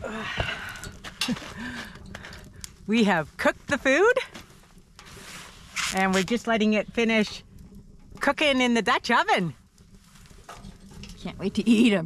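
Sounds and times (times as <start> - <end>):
woman speaking: 2.9 - 4.2, 6.0 - 7.4, 11.2 - 12.0.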